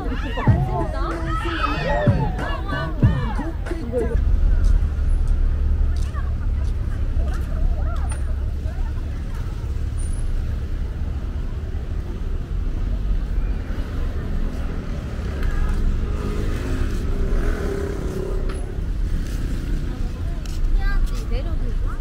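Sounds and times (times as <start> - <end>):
passers-by talking: 0.0 - 22.0
road traffic rumble: 0.0 - 22.0.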